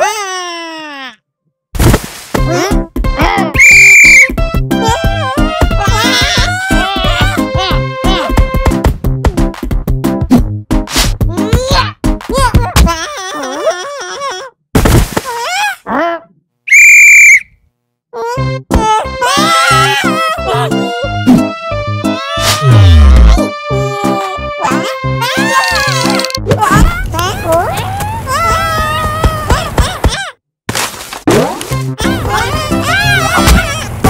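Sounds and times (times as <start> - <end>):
thud: 1.8 - 2.4, 14.8 - 15.3
cartoon background music: 2.4 - 14.3, 18.2 - 30.3, 31.3 - 34.0.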